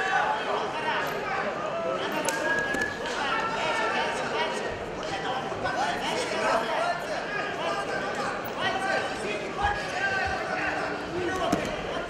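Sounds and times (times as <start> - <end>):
shouting voices: 0.0 - 12.0.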